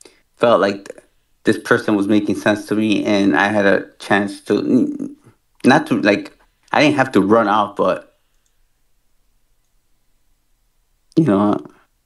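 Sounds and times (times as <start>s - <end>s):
faint clicks: 8.3s - 8.6s.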